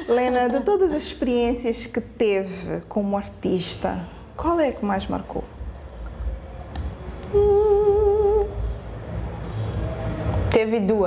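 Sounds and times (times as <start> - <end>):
low room noise rumble: 0.0 - 11.0
woman humming: 7.2 - 8.6.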